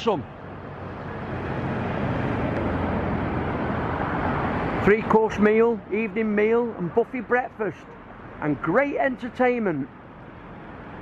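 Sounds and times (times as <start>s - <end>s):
car passing by: 0.5s - 5.2s.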